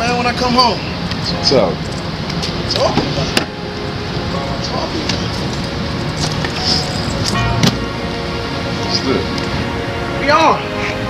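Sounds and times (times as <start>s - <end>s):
background music: 0.0s - 11.0s
steady low hum: 0.7s - 11.0s.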